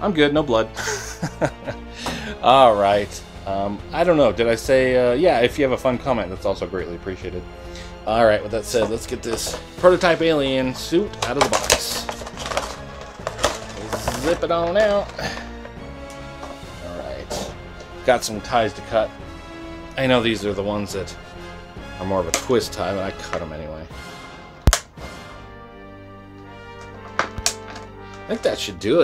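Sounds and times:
quiet background music: 0.0s - 29.0s
plastic tray rustling and scraping: 8.6s - 15.7s
cutters snipping wire: 26.8s - 28.3s.

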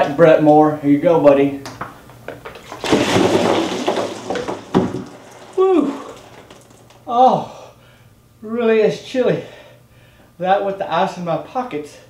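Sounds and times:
ice water splashing: 2.6s - 7.0s.

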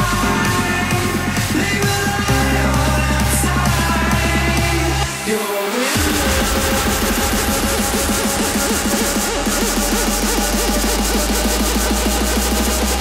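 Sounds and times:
electro house dance music: 0.0s - 13.0s.

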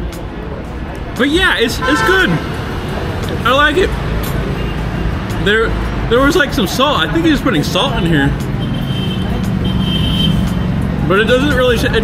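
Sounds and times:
low rumble of street traffic: 0.0s - 12.0s.

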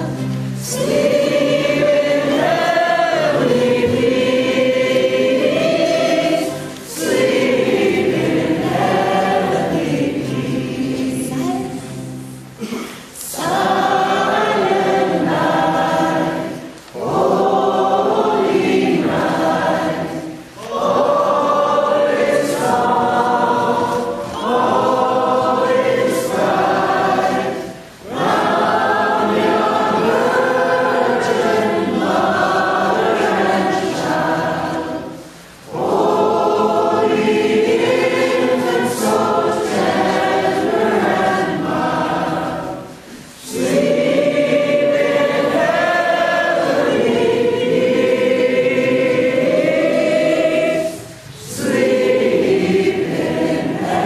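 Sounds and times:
choir singing: 0.0s - 54.0s.

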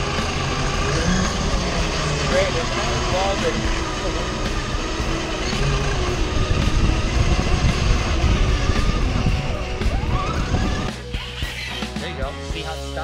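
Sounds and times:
electric motor and geartrain whine: 0.0s - 13.0s
rock music: 0.0s - 13.0s.

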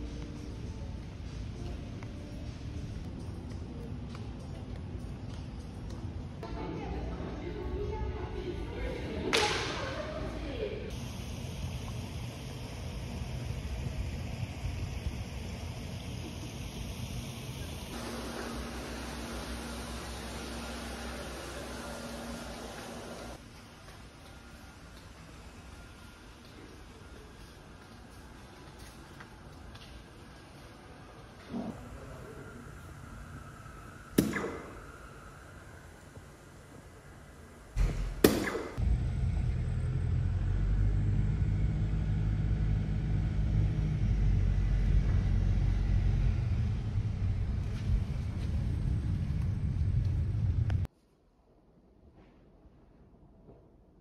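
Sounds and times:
dart hitting electronic dartboard: 34.2s - 34.8s, 37.8s - 38.8s
sharp crack: 34.2s - 34.9s.

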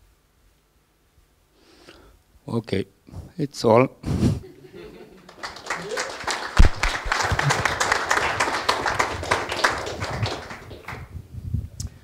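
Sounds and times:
audience applauding: 5.1s - 11.1s.

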